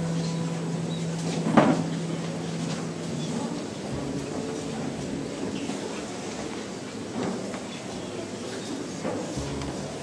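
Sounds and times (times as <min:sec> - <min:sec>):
steady low tone: 0:00.0 - 0:06.3, 0:09.4 - 0:10.0.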